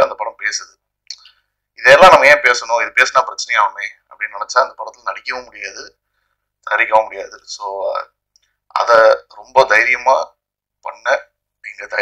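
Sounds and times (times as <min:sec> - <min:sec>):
man talking into a microphone: 0:00.0 - 0:06.0, 0:06.6 - 0:12.0.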